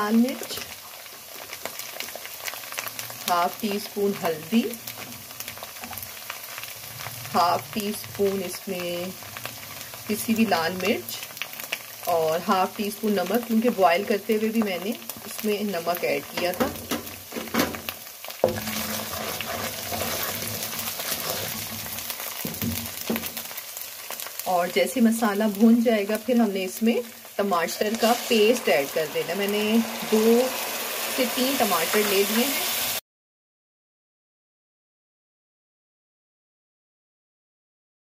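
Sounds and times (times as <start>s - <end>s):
onions sizzling in hot oil: 0.0s - 33.0s
spoon scraping and stirring: 18.4s - 22.4s.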